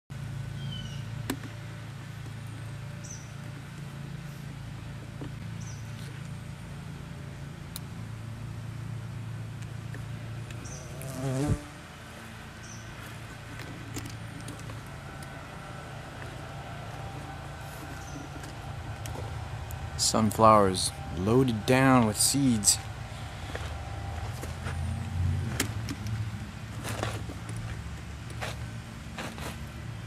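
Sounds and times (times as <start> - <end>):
bee buzzing in flight: 10.6 - 11.9.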